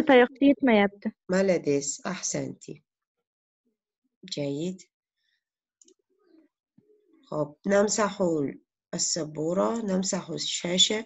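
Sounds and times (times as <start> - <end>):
person speaking: 0.0 - 1.1.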